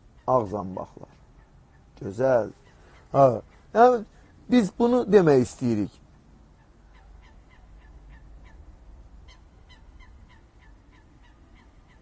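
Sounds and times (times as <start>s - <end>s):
faint bird calls: 0.0s - 12.0s.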